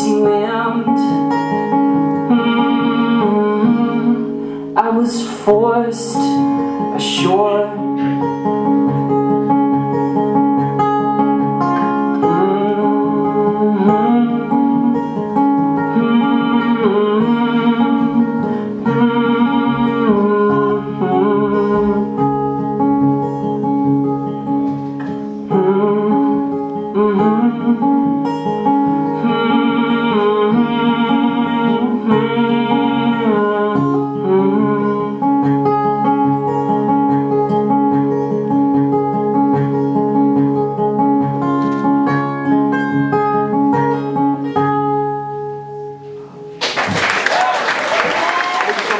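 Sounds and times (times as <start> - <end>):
acoustic guitar folk instrumental: 0.0 - 46.7.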